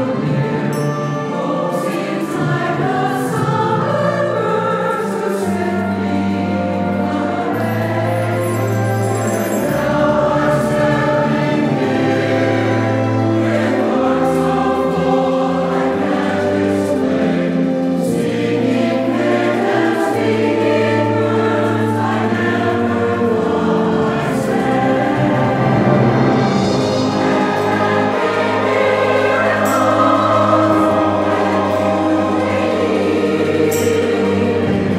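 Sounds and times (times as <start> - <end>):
mixed choir singing: 0.0 - 34.9
orchestra of strings and flute: 0.0 - 34.9.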